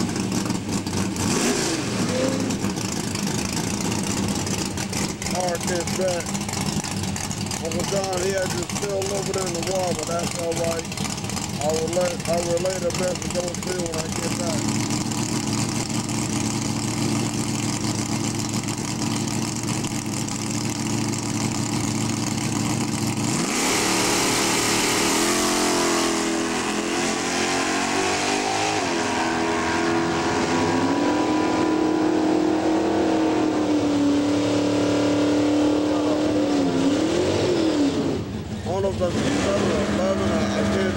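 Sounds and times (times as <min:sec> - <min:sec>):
drag car engine revving: 0:00.0 - 0:40.9.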